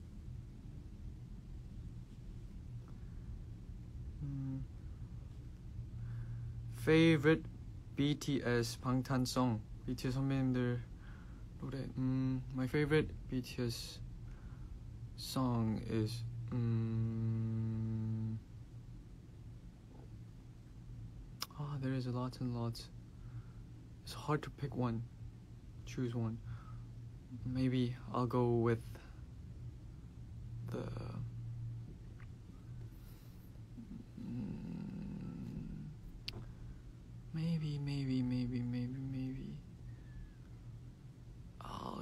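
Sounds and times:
low background hum: 0.0 - 42.0
man humming: 4.1 - 4.8, 16.2 - 18.5, 30.6 - 31.4, 33.8 - 36.4.

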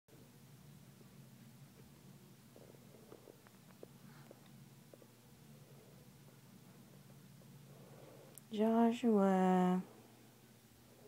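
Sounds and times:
low steady hum: 0.1 - 11.0.

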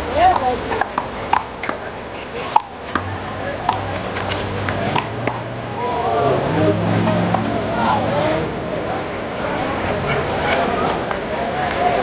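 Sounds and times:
background voices: 0.0 - 12.0.

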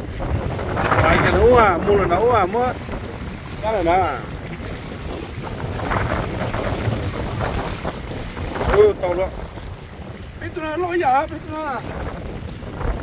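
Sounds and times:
waves lapping against rocks: 0.0 - 13.0
wind buffeting microphone: 0.0 - 13.0
man exclaiming: 10.4 - 11.9.

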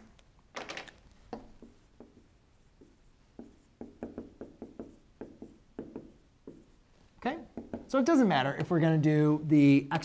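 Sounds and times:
marker writing on whiteboard: 1.2 - 9.2.

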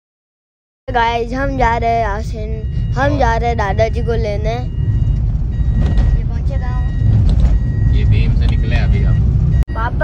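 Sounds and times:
road and engine rumble in car: 0.9 - 10.0.

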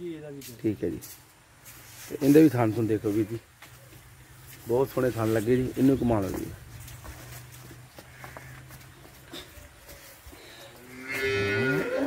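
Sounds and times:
cow mooing: 10.9 - 12.0.

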